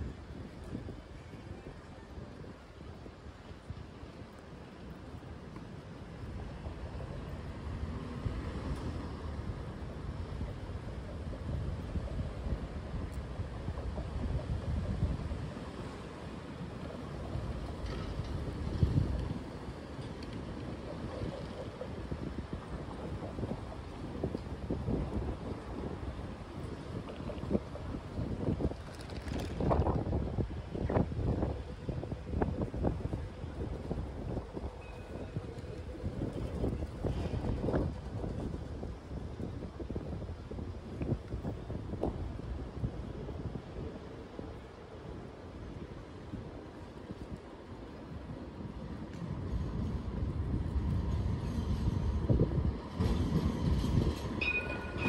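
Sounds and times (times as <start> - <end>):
low rumble of traffic: 0.0 - 55.0
wind buffeting microphone: 0.0 - 55.0.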